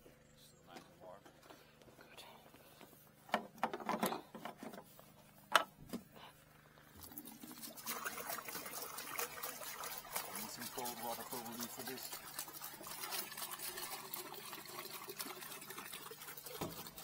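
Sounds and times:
plastic jerrycans knocking: 0:03.3 - 0:04.9
water pouring into bucket: 0:06.9 - 0:17.0.

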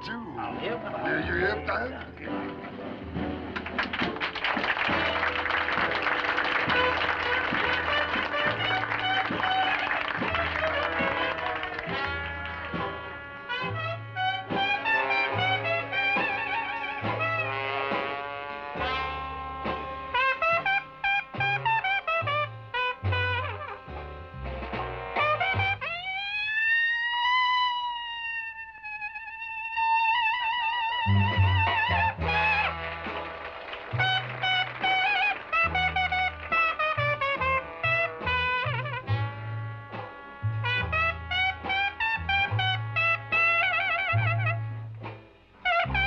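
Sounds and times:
jazz band playing: 0:00.0 - 0:46.0
long high trumpet note: 0:05.1 - 0:46.0.

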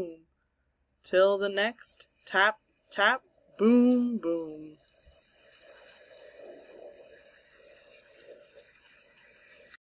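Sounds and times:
rain falling: 0:02.0 - 0:09.9.

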